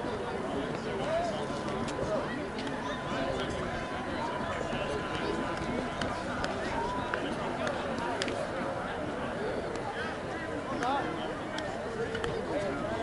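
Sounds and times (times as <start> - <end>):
indistinct chatter of voices: 0.0 - 13.0.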